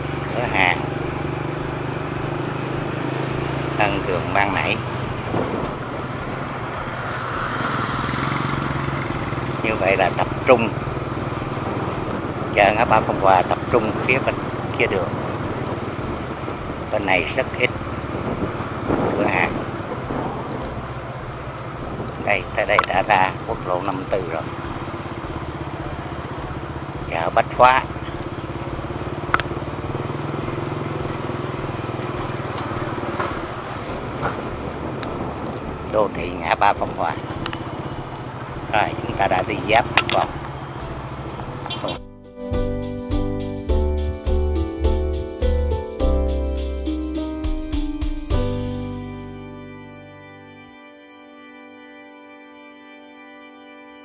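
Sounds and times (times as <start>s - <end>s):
motorcycle engine running: 0.0s - 49.6s
road noise rushing: 0.0s - 50.1s.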